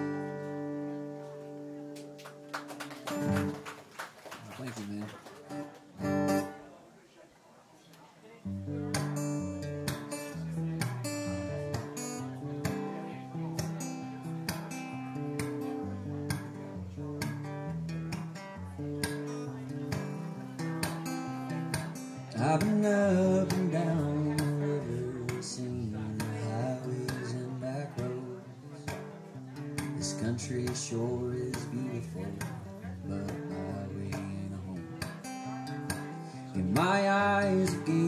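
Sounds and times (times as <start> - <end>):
acoustic guitar picked and strummed: 0.0 - 3.8, 5.4 - 6.8, 8.4 - 38.0
man singing: 21.7 - 29.1, 29.8 - 38.0.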